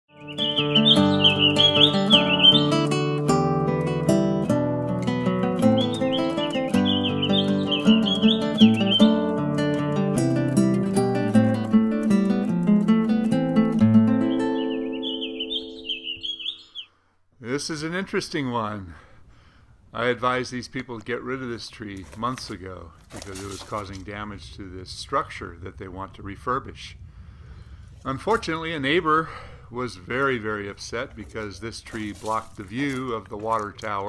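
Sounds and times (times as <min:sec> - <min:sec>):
birdsong chirping: 0:00.1 - 0:03.5, 0:05.1 - 0:09.9, 0:13.6 - 0:17.0
acoustic guitar music: 0:00.1 - 0:16.7.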